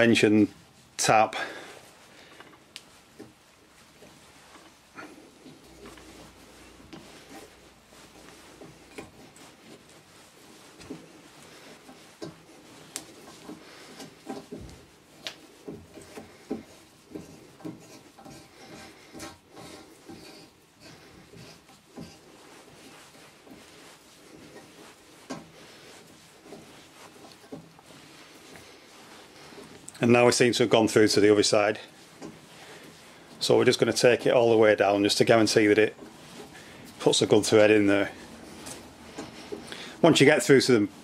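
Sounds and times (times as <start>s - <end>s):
small clicks and creaks: 2.3s - 3.4s, 10.7s - 22.8s, 26.4s - 30.3s.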